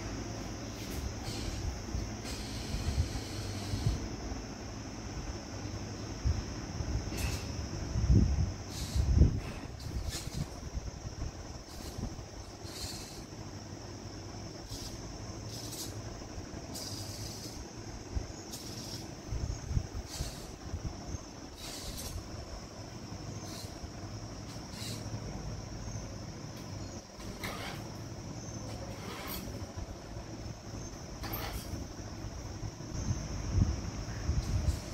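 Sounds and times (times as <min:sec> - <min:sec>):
steady high whine: 0:00.0 - 0:34.9.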